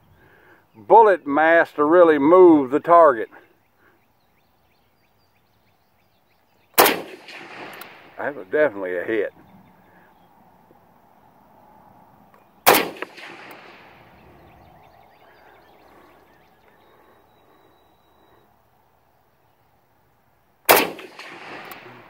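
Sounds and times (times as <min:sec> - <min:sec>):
rifle shots with echo: 0:06.8 - 0:09.0, 0:12.6 - 0:15.5, 0:20.7 - 0:22.0.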